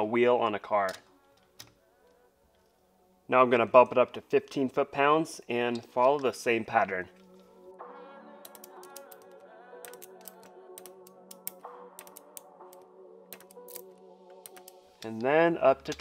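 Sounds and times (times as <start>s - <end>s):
quiet background music: 0.0s - 16.0s
torque wrench clicking: 8.5s - 9.3s.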